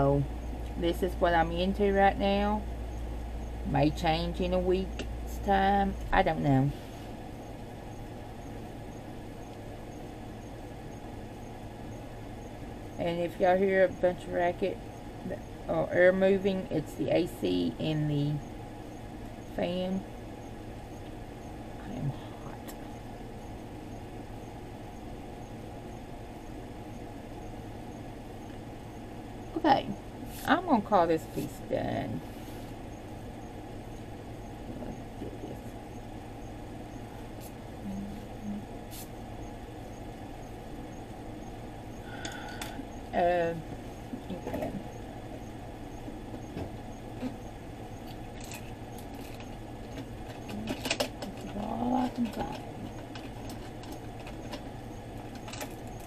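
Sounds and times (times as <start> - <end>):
air conditioner and fan running: 0.0 - 56.0.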